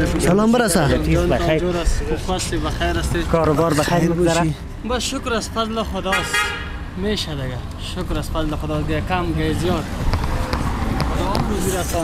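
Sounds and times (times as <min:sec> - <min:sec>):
men talking: 0:00.0 - 0:12.0
car horn toot: 0:06.1 - 0:06.8.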